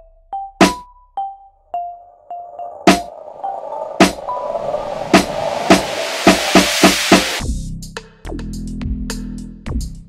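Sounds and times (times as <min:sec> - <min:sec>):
hiss: 0:02.9 - 0:07.4.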